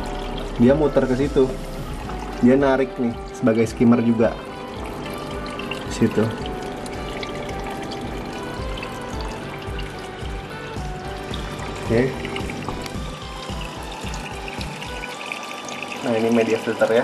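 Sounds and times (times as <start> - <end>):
background music with low beat: 0.0 - 17.0
water trickling through filter: 0.0 - 17.0.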